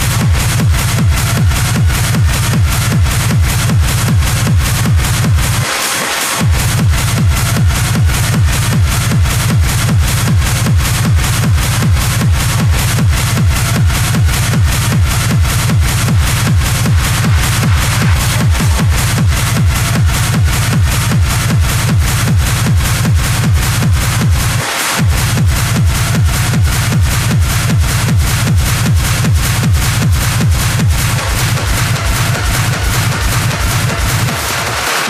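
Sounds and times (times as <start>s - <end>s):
hard techno music: 0.0s - 35.0s.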